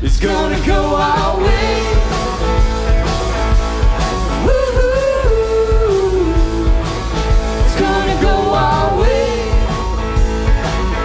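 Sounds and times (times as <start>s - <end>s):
drum kit steady beat: 0.0s - 11.0s
live rock band playing: 0.0s - 11.0s.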